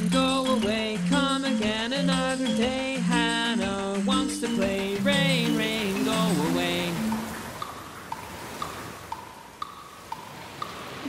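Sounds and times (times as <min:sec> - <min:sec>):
water drip plinks: 0:04.4 - 0:11.0
soft rain patter: 0:04.6 - 0:11.0.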